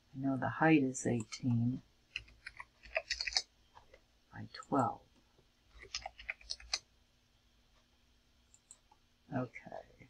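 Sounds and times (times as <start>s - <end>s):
computer keyboard keys clicking: 1.2s - 3.5s, 5.8s - 6.8s.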